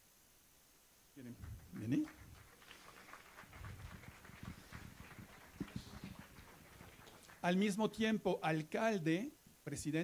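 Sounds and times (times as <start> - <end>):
faint footsteps on stage floor: 1.4 - 7.4.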